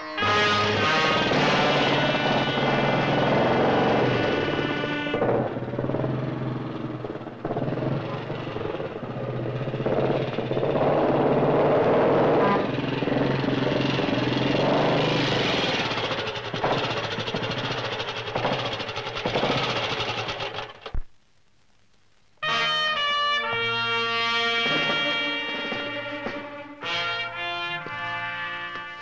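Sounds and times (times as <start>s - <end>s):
motorcycle engine running: 0.6s - 21.0s.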